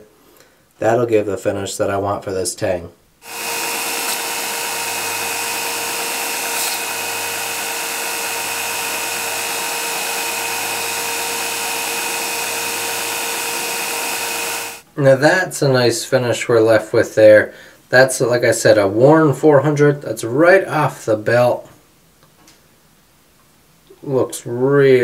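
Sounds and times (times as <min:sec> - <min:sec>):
belt grinder grinding steel: 0:03.2 - 0:14.8
machine hum: 0:03.2 - 0:14.8.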